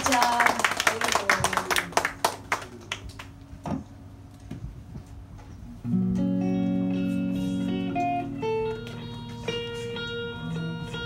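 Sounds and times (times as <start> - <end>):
audience clapping: 0.0 - 3.4.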